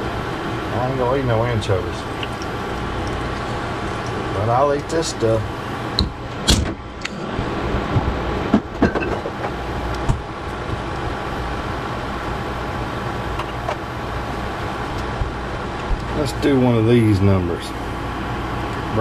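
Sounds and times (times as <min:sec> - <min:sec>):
cooktop fan hum: 0:00.0 - 0:19.0.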